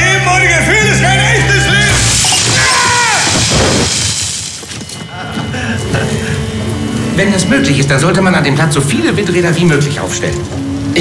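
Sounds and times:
electrical arc crackling sparks: 1.9s - 4.9s.

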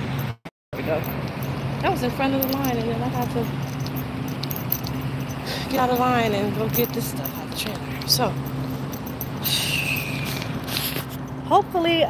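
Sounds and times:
vehicle engines idling: 0.0s - 12.0s
high squealing whistle: 9.3s - 10.6s.

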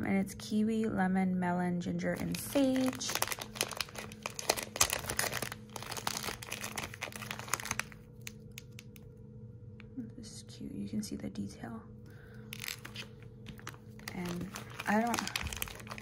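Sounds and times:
plastic bag crinkling: 2.2s - 9.0s, 12.2s - 16.0s.

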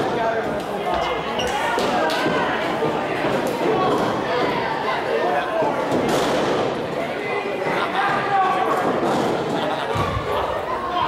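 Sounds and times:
crowd voices and shouts: 0.0s - 11.0s.

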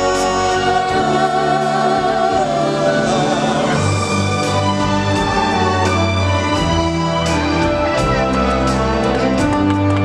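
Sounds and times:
choir singing held notes: 0.0s - 6.0s
orchestral backing: 0.0s - 10.0s.

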